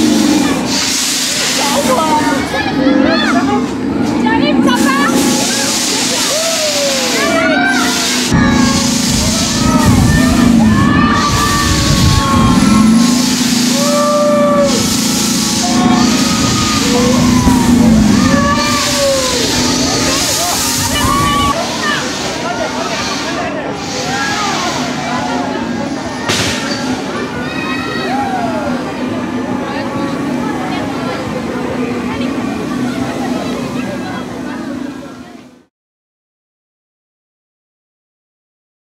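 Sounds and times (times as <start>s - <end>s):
steady low hum: 0.0s - 21.6s
voices calling out: 0.0s - 35.4s
swing ride running: 0.0s - 35.7s
wind buffeting microphone: 9.1s - 13.2s.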